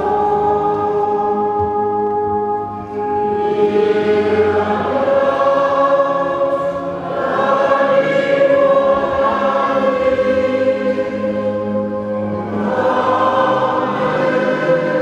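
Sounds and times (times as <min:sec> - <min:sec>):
voices singing a slow hymn: 0:00.0 - 0:02.0, 0:02.9 - 0:15.0.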